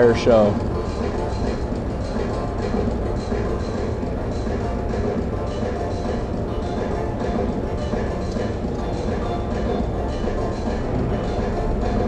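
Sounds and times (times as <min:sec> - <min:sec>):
music playing: 0:00.0 - 0:12.0.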